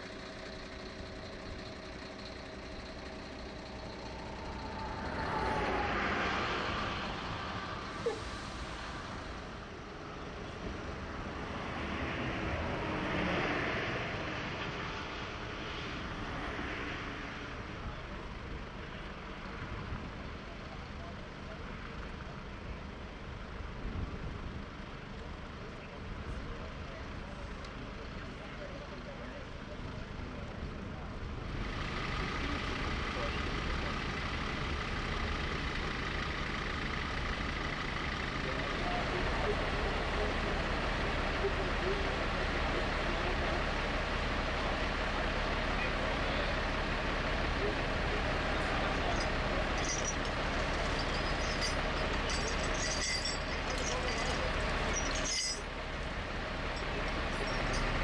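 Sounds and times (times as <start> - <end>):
fire engines idling: 0.0 - 58.0
indistinct voices: 32.1 - 58.0.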